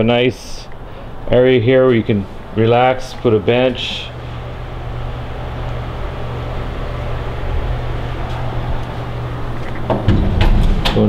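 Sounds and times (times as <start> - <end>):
steady low hum: 0.0 - 11.0
low rumble: 3.4 - 11.0.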